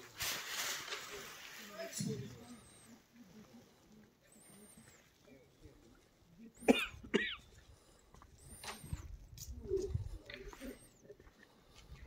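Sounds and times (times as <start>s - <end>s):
person coughing: 6.6s - 7.4s.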